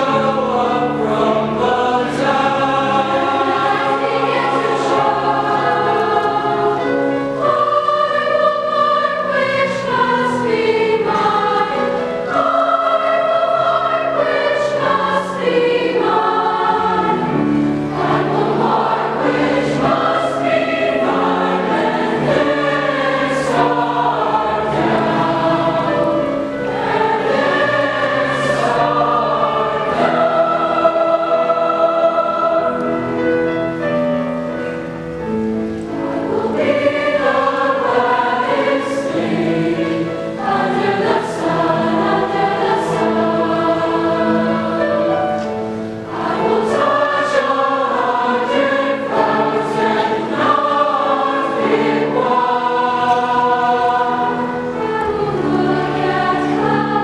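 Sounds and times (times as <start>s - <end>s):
mixed choir singing: 0.0s - 34.7s, 35.8s - 57.0s.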